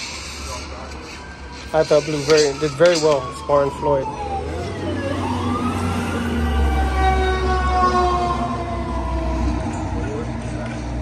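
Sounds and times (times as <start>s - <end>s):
emergency vehicle siren wailing: 0.0s - 11.0s.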